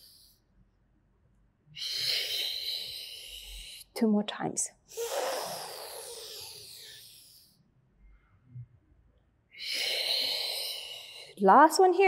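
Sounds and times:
person breathing out: 0:01.8 - 0:03.9, 0:04.9 - 0:07.6, 0:09.5 - 0:11.4.

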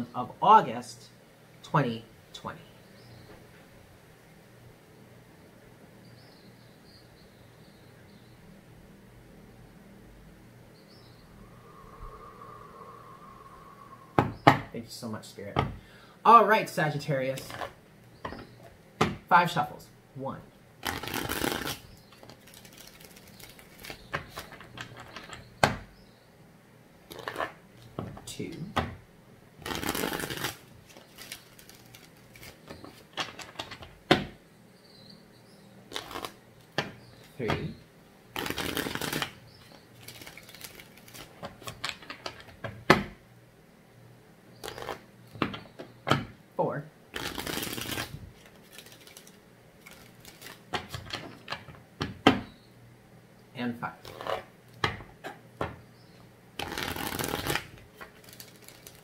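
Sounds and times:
cards being shuffled: 0:20.8 - 0:25.2, 0:27.1 - 0:27.6, 0:29.6 - 0:33.7, 0:35.9 - 0:36.4, 0:38.4 - 0:42.5, 0:44.6 - 0:45.0, 0:47.2 - 0:51.6, 0:54.0 - 0:54.5, 0:56.6 - 0:59.0.

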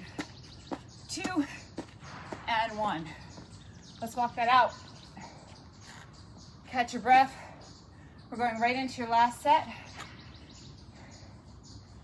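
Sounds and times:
faint birds chirping: 0:00.0 - 0:12.0
quiet outdoor background noise: 0:00.0 - 0:12.0.

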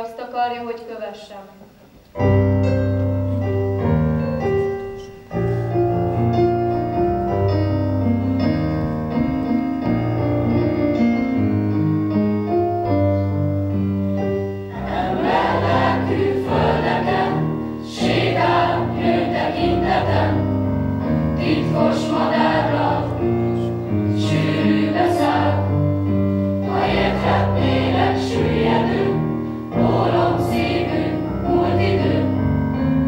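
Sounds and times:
choir of young voices singing: 0:14.7 - 0:32.9.

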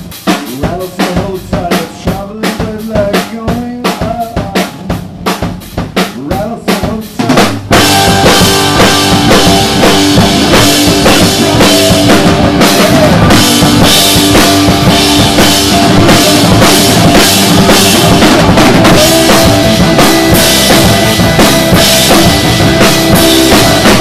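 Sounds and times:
drum kit: 0:00.0 - 0:24.0
live rock band playing: 0:00.0 - 0:24.0
picked electric guitar line: 0:07.7 - 0:24.0.

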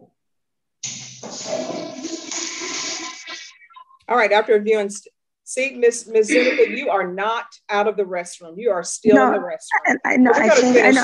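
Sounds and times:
toilet flushing: 0:01.2 - 0:03.5.

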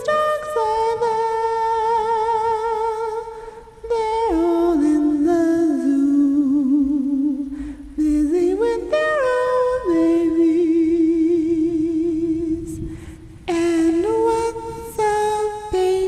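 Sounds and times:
person humming a slow melody: 0:00.0 - 0:16.0.

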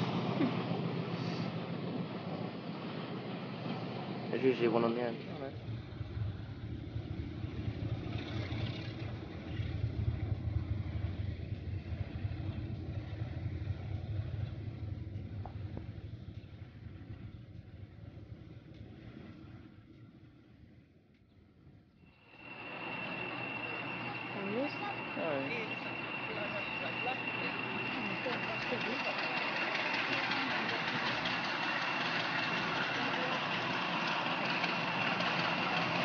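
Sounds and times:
diesel locomotive engines rumbling: 0:00.0 - 0:36.0
steady high-pitched tone: 0:22.1 - 0:32.3.

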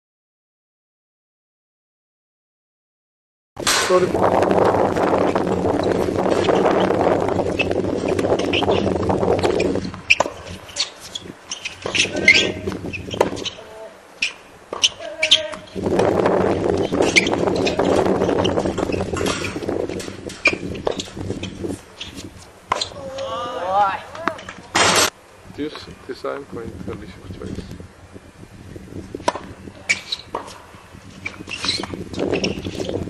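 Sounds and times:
wind rumble on microphone: 0:03.6 - 0:13.8, 0:14.7 - 0:33.0
footsteps on hard court: 0:04.6 - 0:13.6, 0:14.7 - 0:22.9
tennis balls struck by rackets: 0:07.6 - 0:23.2, 0:24.1 - 0:25.1, 0:29.2 - 0:32.0
players calling out: 0:09.4 - 0:15.8, 0:22.0 - 0:25.1.

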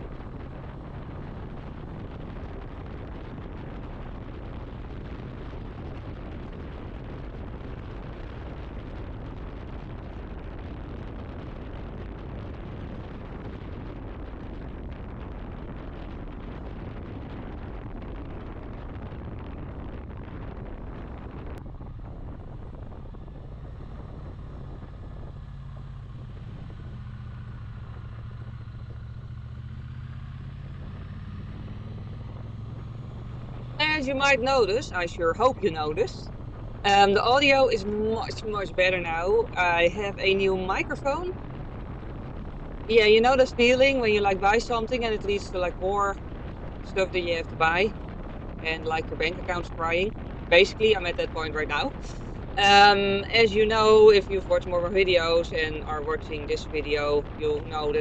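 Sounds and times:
wind noise: 0:00.0 - 0:58.0
motorcycle engine cruising: 0:19.3 - 0:44.0.

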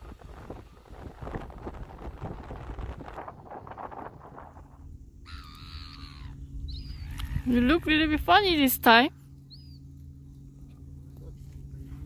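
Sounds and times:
wind on microphone: 0:00.0 - 0:08.5
short wavering bird call: 0:05.2 - 0:07.6, 0:09.5 - 0:09.9.

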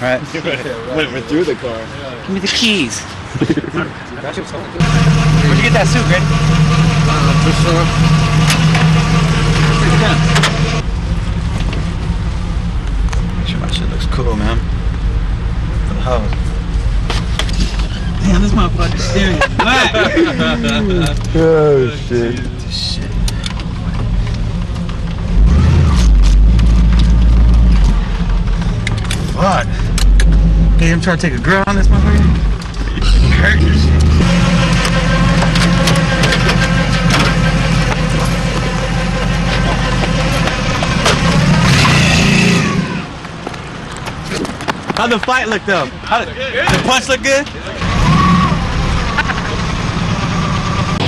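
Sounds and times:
car engine idling: 0:04.4 - 0:44.4, 0:46.9 - 0:51.0.

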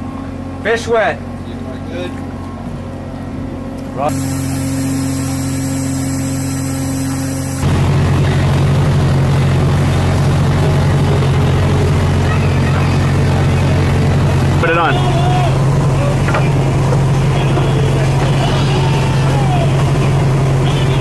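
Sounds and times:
ship engines droning: 0:00.0 - 0:21.0.

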